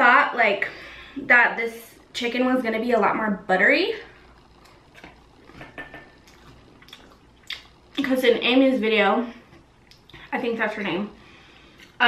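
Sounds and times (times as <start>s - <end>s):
quiet chewing: 4.2s - 8.0s, 9.4s - 10.3s, 11.6s - 12.0s.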